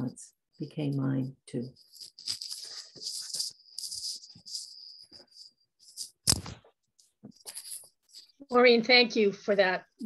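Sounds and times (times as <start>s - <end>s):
rustling handling noise: 1.8s - 8.4s.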